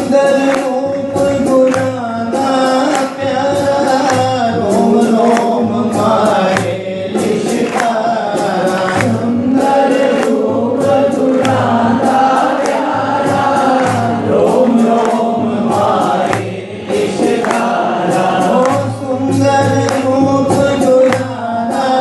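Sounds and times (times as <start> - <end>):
low drumbeat: 0.0 - 22.0
voices singing devotional song: 0.0 - 22.0.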